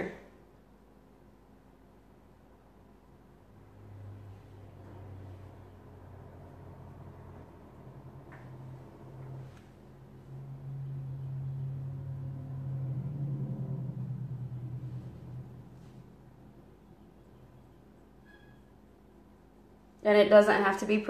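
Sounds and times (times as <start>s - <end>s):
low mechanical hum: 0.0s - 21.0s.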